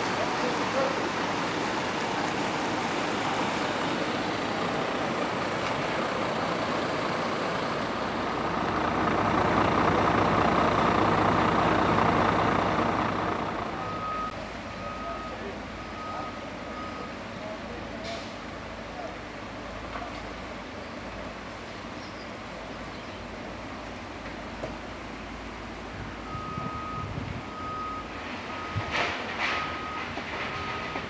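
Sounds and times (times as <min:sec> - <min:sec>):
heavy vehicle engine rumbling: 0:00.0 - 0:31.0
reversing alarm beeping: 0:13.7 - 0:17.2, 0:26.3 - 0:28.9, 0:29.5 - 0:31.0.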